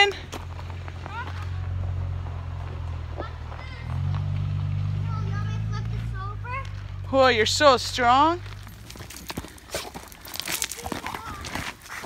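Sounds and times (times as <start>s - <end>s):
truck engine running: 0.0s - 11.4s.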